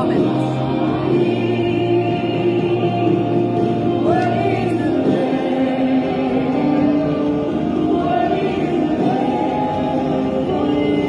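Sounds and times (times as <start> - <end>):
choir holding sustained chords: 0.0 - 11.0.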